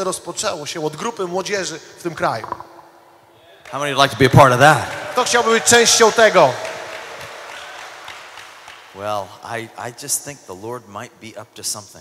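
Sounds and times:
audience applauding: 0:03.6 - 0:10.0.

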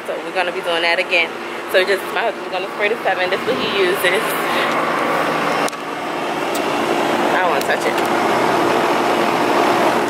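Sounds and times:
mechanical hum with tones: 0:00.0 - 0:10.0.

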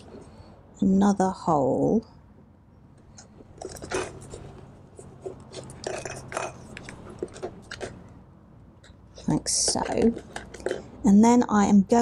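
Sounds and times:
tool scraping card: 0:03.4 - 0:08.1, 0:09.2 - 0:10.9
paper crinkling: 0:03.5 - 0:08.1.

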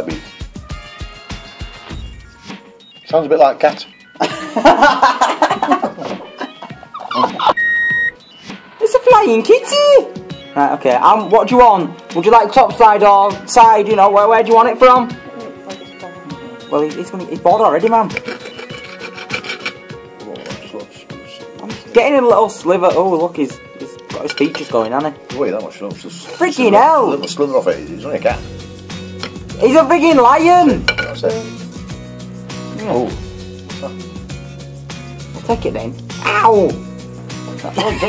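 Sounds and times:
background music: 0:00.0 - 0:38.0
people laughing heartily: 0:04.2 - 0:07.6, 0:37.6 - 0:38.0
high-pitched electronic beep: 0:07.1 - 0:08.5
knife sawing meat: 0:18.2 - 0:19.8.

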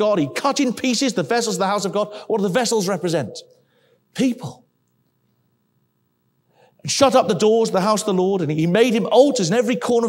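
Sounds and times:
man speaking: 0:00.0 - 0:03.5, 0:04.1 - 0:04.7, 0:06.8 - 0:10.0
low steady hum: 0:00.0 - 0:10.0.

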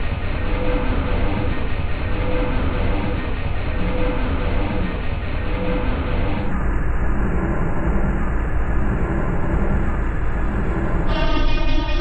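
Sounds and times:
heavy low rumble: 0:00.0 - 0:12.0.

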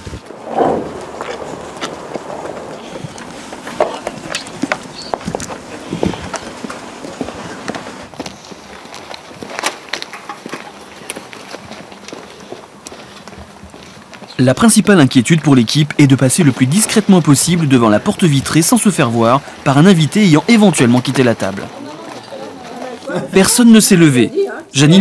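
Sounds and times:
hurried footsteps on pavement: 0:03.0 - 0:18.0, 0:20.4 - 0:23.3.

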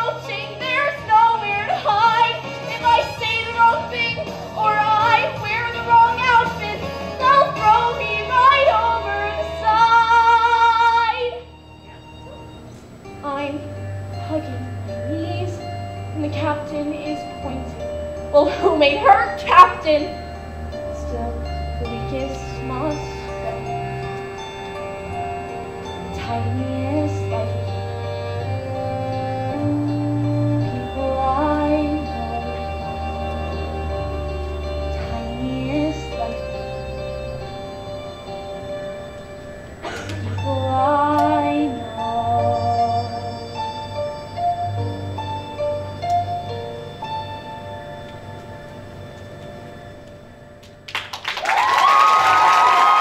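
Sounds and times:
soft musical accompaniment: 0:00.0 - 0:53.0
woman singing ballad: 0:20.9 - 0:23.8, 0:26.1 - 0:27.7, 0:29.4 - 0:33.0, 0:34.9 - 0:36.6, 0:40.0 - 0:43.6.

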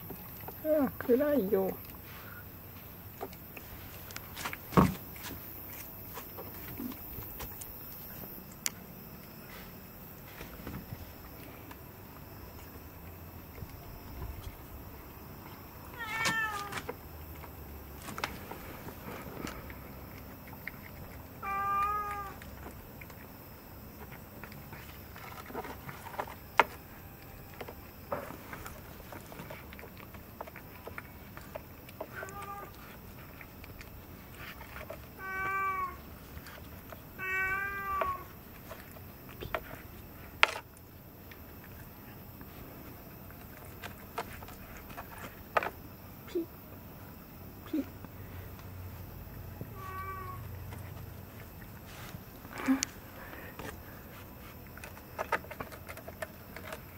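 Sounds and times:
cat meowing: 0:15.9 - 0:16.8, 0:21.4 - 0:22.4, 0:32.1 - 0:32.8, 0:35.2 - 0:36.0, 0:37.2 - 0:38.3, 0:49.7 - 0:50.5.

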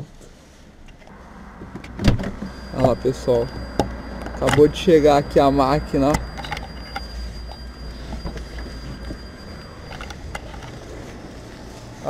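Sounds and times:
car engine running low revs: 0:01.1 - 0:12.0.

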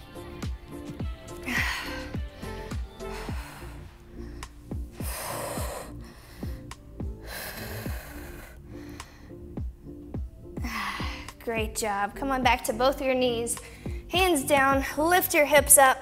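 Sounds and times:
background music with steady beat: 0:00.0 - 0:16.0
woman breathing deeply into microphone: 0:01.4 - 0:09.7.

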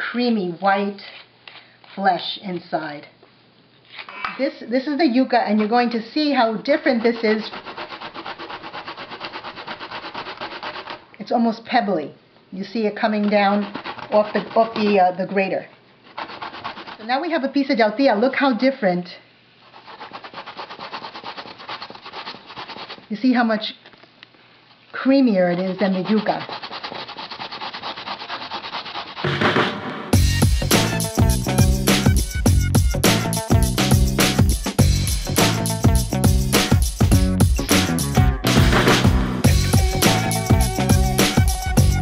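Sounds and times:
root grated on metal grater: 0:06.7 - 0:11.0, 0:13.0 - 0:15.5, 0:16.2 - 0:17.2, 0:25.6 - 0:29.3.

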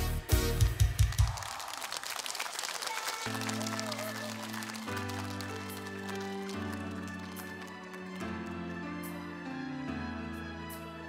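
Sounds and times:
audience applause: 0:01.0 - 0:09.1.

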